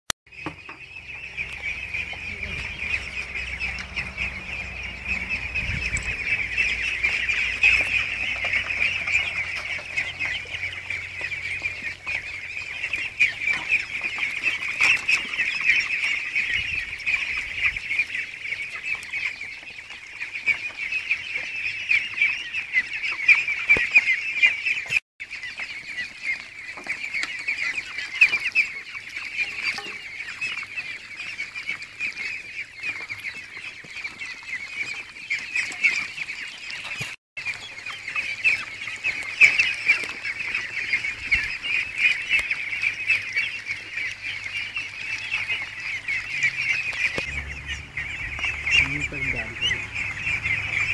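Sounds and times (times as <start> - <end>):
ducks calling: 0.3 - 50.9.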